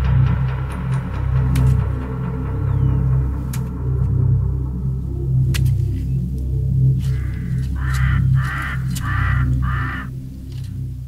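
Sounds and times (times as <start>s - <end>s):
low musical drone: 0.0s - 11.0s
crow cawing: 7.0s - 10.2s.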